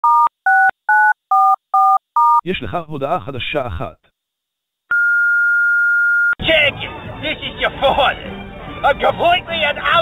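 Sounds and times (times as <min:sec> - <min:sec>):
telephone keypad beeps: 0:00.0 - 0:02.4.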